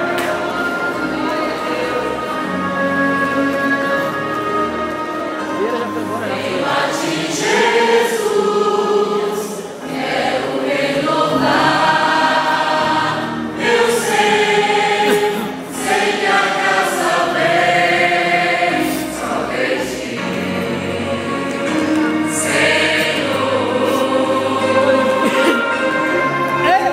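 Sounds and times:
church choir singing a hymn: 0:00.0 - 0:26.9
choir breaths: 0:05.2 - 0:21.8, 0:22.4 - 0:26.3.

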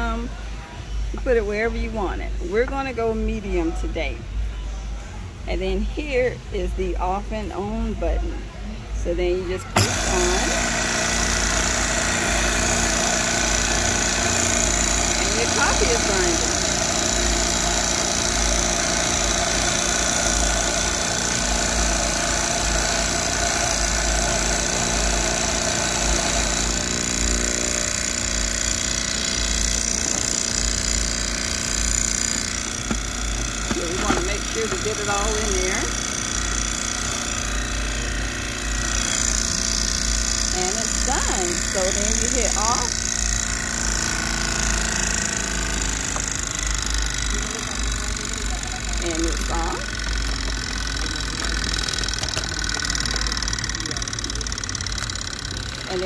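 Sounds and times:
machine hum with high hiss: 0:00.0 - 0:56.0
coffee grinder grinding beans: 0:09.6 - 0:56.0.

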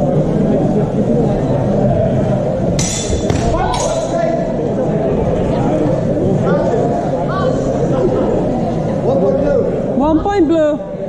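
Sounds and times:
din of voices in a hall: 0:00.0 - 0:11.0
steel swords clashing: 0:02.8 - 0:04.2.

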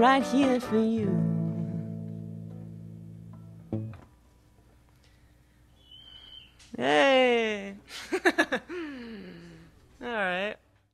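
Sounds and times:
guitar chord ringing: 0:00.0 - 0:04.2.

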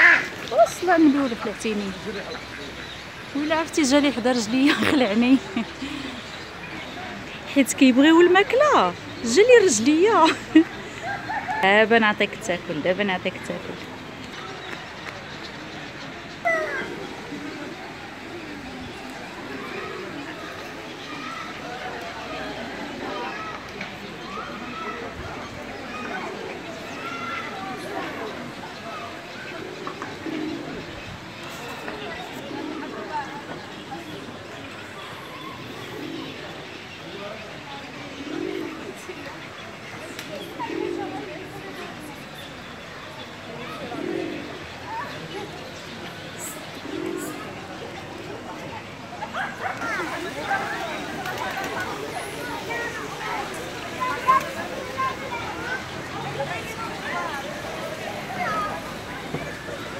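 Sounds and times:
distant voices: 0:00.0 - 0:59.9.

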